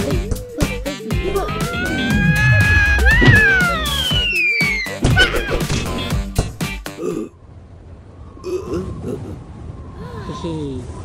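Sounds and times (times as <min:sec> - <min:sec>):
cartoon gliding mumbles: 0:01.1 - 0:05.8.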